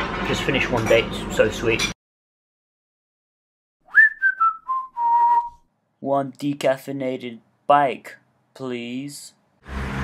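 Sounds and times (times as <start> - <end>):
person whistling a tune: 3.9 - 5.6.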